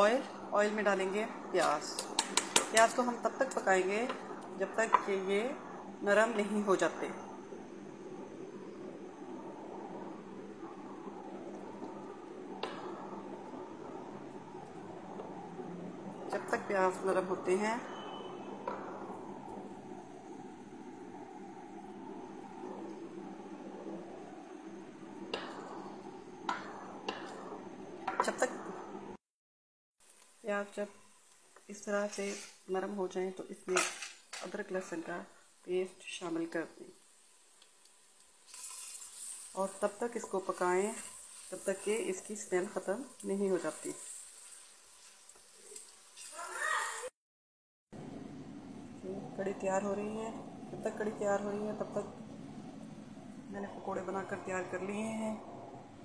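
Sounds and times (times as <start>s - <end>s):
onions sizzling in oil: 30.0s - 47.1s.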